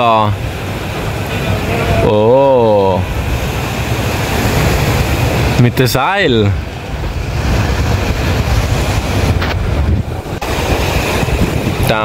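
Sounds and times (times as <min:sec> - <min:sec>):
heavy low rumble: 0:00.0 - 0:12.0
wind buffeting microphone: 0:00.0 - 0:12.0.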